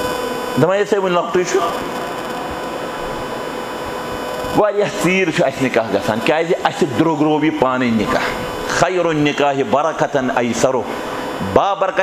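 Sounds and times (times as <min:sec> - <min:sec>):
faint constant tones: 0:00.0 - 0:12.0
steady hum and hiss: 0:00.0 - 0:12.0.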